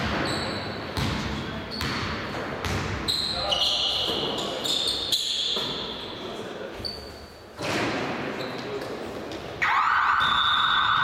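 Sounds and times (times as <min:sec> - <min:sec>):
noisy hall hubbub: 0:00.0 - 0:11.0.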